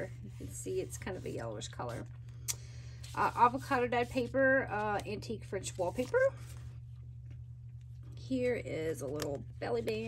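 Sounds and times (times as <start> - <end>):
low electrical hum: 0.0 - 10.0
paper page rustling: 3.0 - 6.8.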